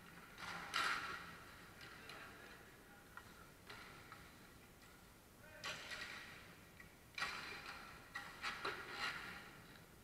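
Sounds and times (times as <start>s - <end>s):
hockey sticks clacking: 0.0s - 9.9s.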